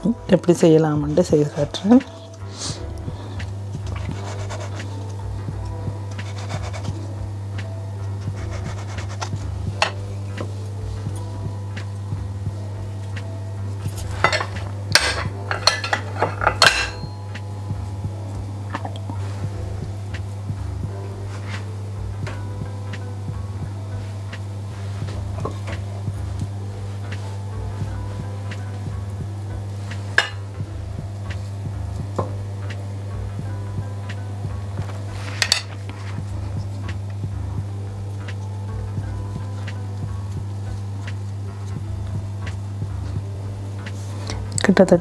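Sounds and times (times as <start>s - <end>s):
background music: 0.0s - 45.0s
utensils clattering on marble board: 14.2s - 17.1s
metal spoon clinks: 15.0s - 17.2s.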